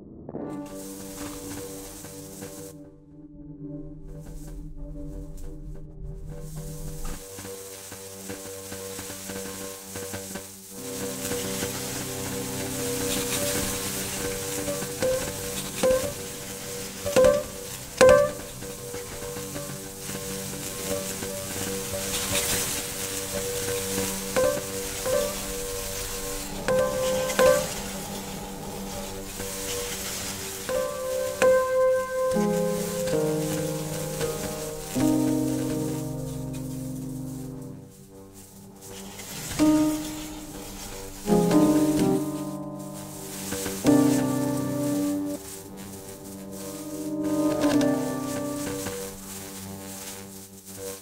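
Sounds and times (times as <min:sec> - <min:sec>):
crackling sizzling noise: 0:00.6 - 0:02.8, 0:04.0 - 0:51.0.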